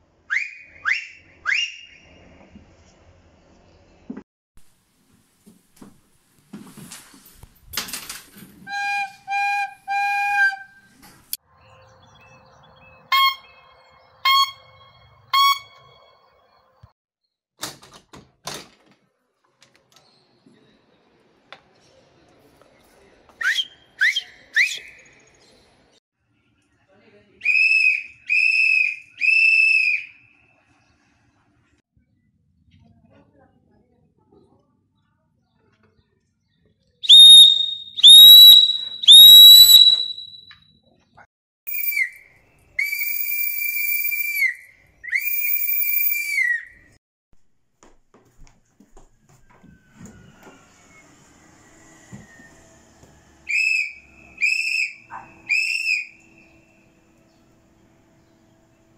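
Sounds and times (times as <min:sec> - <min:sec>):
man whistling through fingers: 0:00.3 - 0:01.9, 0:08.7 - 0:10.9, 0:23.4 - 0:25.0, 0:37.1 - 0:40.6, 0:41.7 - 0:46.9, 0:53.5 - 0:56.2
long steady whistle blasts: 0:14.2 - 0:16.0, 0:27.4 - 0:30.2, 0:37.1 - 0:40.5, 0:41.7 - 0:42.2, 0:42.8 - 0:46.6, 0:50.8 - 0:57.2.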